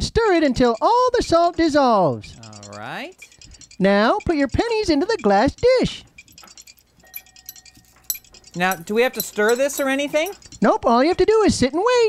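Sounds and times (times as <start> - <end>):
coins clinking on glass: 6.0 - 10.6.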